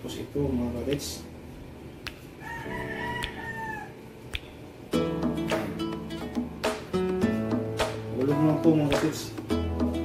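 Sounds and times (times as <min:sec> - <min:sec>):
rooster crowing: 0:02.4 - 0:04.1.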